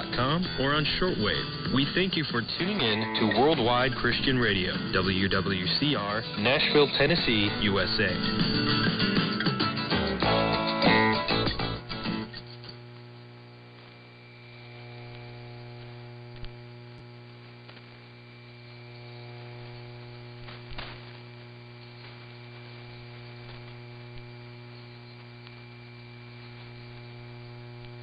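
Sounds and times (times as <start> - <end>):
static hiss: 0.0 - 28.0
steady mains hum: 0.0 - 28.0
faint crackles: 12.2 - 28.0.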